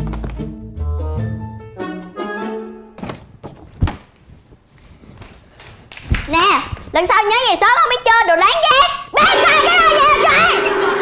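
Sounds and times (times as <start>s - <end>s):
background music with held notes: 0.0s - 3.0s, 9.2s - 11.0s.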